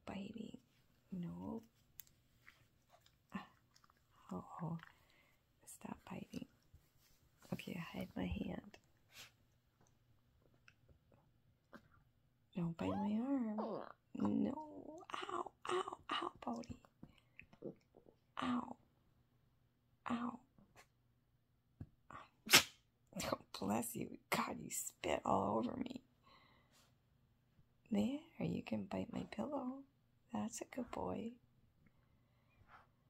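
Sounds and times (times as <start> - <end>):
woman whispering: 0.0 - 1.7, 3.3 - 6.6, 7.4 - 8.8, 12.6 - 13.6, 14.2 - 17.0, 20.1 - 20.5
puppy sneezing: 22.4 - 22.8.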